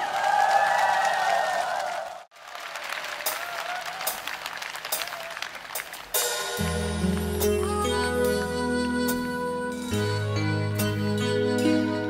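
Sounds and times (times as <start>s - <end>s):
audience applauding: 0.0s - 6.4s.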